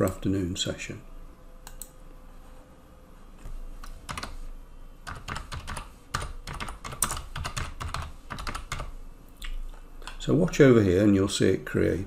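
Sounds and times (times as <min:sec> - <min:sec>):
typing on computer keyboard: 0:03.8 - 0:04.4, 0:05.0 - 0:08.9.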